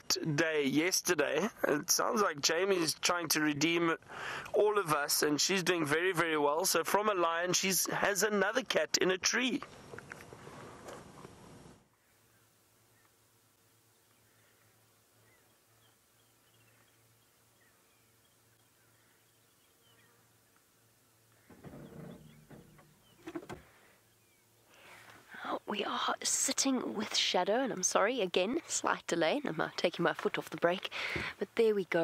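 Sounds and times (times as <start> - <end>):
faint bird chirps: 13.8 - 25.0.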